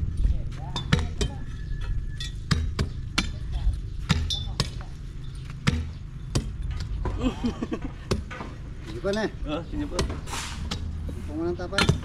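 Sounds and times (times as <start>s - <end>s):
metal bar striking a stump: 2.2s - 3.5s, 4.1s - 4.9s, 5.6s - 7.1s, 11.7s - 12.0s.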